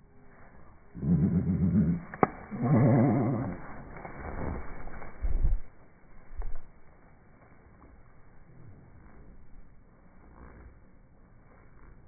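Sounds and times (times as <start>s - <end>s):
faint low sounds: 0.0s - 12.0s
slowed deep wavering bird call: 0.1s - 3.9s.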